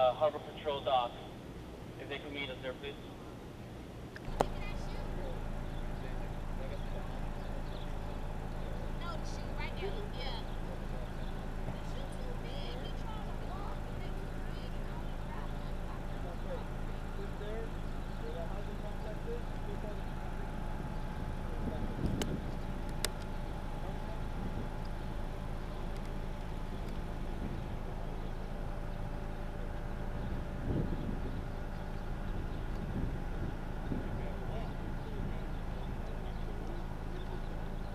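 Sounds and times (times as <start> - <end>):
idling vehicles humming: 0.0 - 37.9
faint indistinct voices: 1.9 - 37.9.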